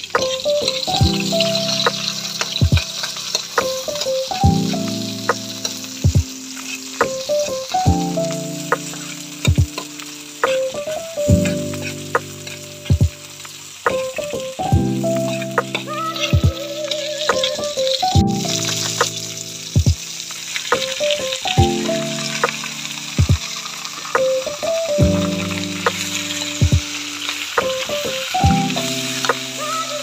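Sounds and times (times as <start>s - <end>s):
metal ladle scraping wok: 0.0s - 4.3s, 5.1s - 7.3s, 11.4s - 12.7s, 15.1s - 17.9s
food sizzling in wok: 0.0s - 30.0s.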